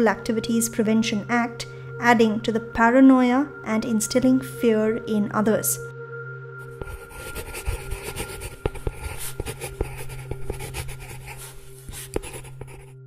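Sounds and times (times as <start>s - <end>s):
pen scratching on paper: 6.7s - 12.9s.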